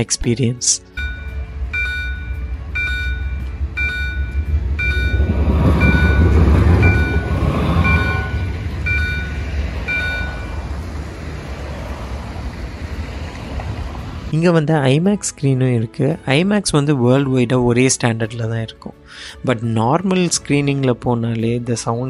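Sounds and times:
vehicle engine rumble: 0.9s - 14.3s
reversing alarm beeping: 1.0s - 11.0s.

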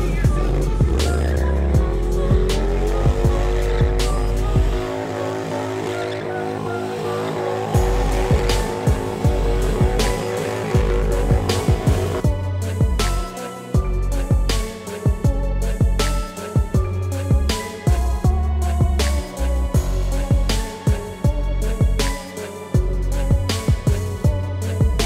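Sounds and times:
motorcycle engine revving: 0.0s - 13.2s
music with a beat: 0.0s - 25.0s.

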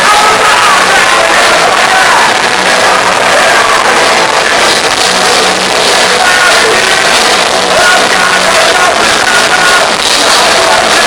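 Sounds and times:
distorted guitars: 0.0s - 11.0s
drums: 0.0s - 11.0s
punk rock band playing: 0.0s - 11.0s.

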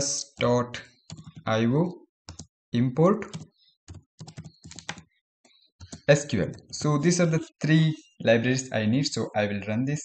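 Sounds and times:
computer keyboard typing: 0.4s - 1.5s, 2.3s - 2.5s, 3.2s - 7.4s.

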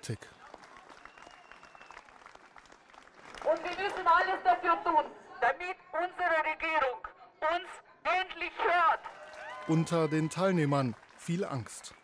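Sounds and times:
crowd clapping: 0.0s - 4.4s, 9.0s - 12.0s.

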